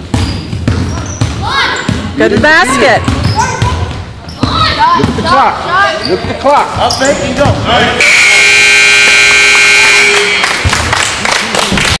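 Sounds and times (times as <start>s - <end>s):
scoreboard buzzer long tone: 8.0s - 10.7s.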